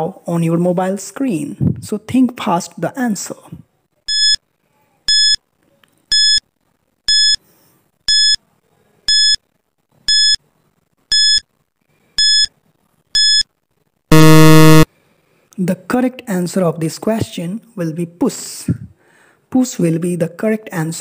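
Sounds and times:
short electronic beeps: 5.1s - 5.4s, 6.1s - 6.4s, 7.1s - 7.4s, 8.1s - 8.4s, 9.1s - 9.4s, 10.1s - 10.4s, 11.1s - 11.4s, 12.2s - 12.5s, 13.2s - 13.4s, 14.1s - 14.9s
long low buzz: 14.1s - 14.9s.

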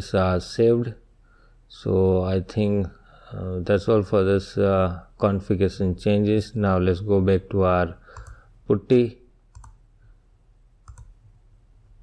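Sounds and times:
computer mouse clicks: 8.1s - 8.5s, 9.5s - 9.8s, 10.8s - 11.3s.

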